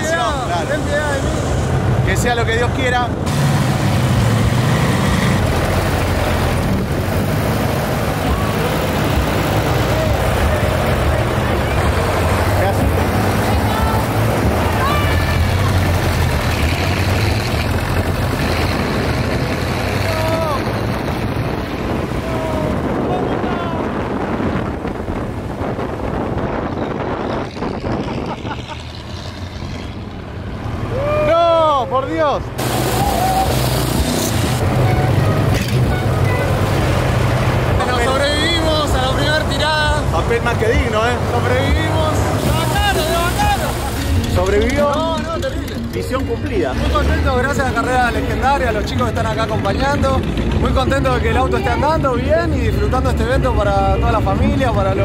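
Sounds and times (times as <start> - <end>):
race car engine drone: 0.0 - 55.0
road noise: 0.0 - 55.0.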